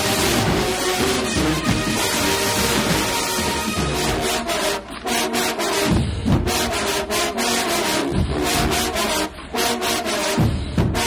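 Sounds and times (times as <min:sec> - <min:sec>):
brass section chords: 0:00.0 - 0:11.0
drumline: 0:00.0 - 0:11.0.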